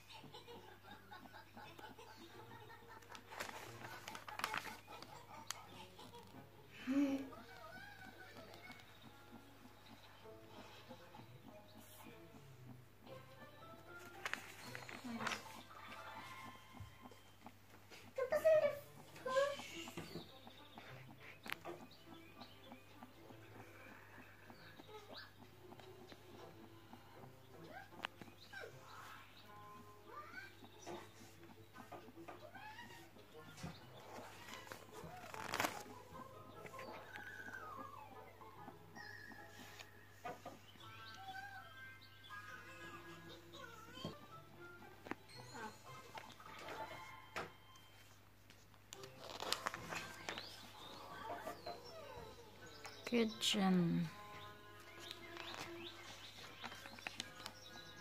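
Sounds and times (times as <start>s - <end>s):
paper page turning: 3.0s - 5.6s, 14.0s - 15.7s, 34.0s - 36.0s, 48.9s - 50.7s, 55.0s - 57.6s
clucking calls: 7.4s - 41.7s
faint animal chirps and squeaks: 18.2s - 44.0s.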